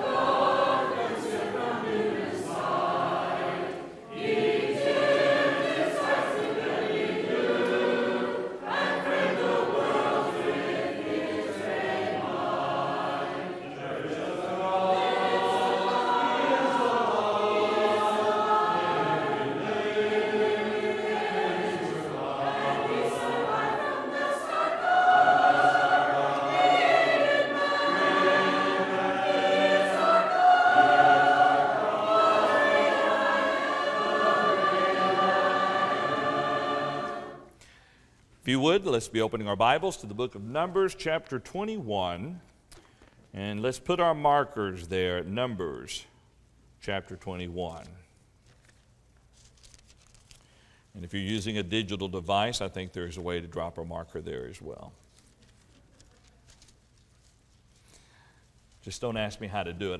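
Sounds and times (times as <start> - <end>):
congregation singing a hymn: 0.0 - 37.9.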